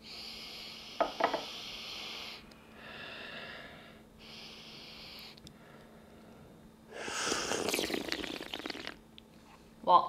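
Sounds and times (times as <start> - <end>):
slurping tea: 7.1 - 9.0.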